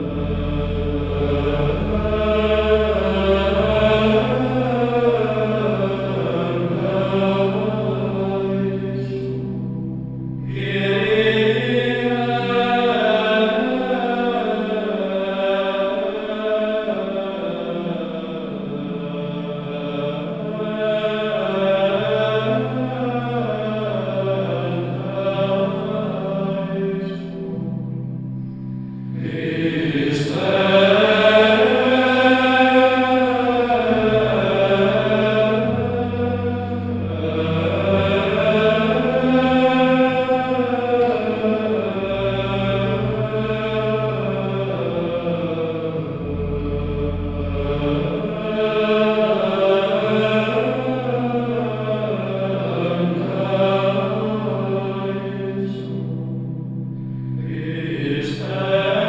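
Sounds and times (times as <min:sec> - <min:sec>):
voices singing sacred chant: 0:00.0 - 0:09.5, 0:10.5 - 0:27.7, 0:29.2 - 0:56.4, 0:57.4 - 0:59.0
held low notes: 0:00.0 - 0:59.0.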